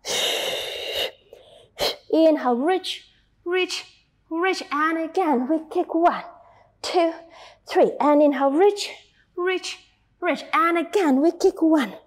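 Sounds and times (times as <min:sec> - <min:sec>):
woman exhaling forcefully: 0:00.0 - 0:01.2
sharp intake of breath: 0:00.0 - 0:02.0.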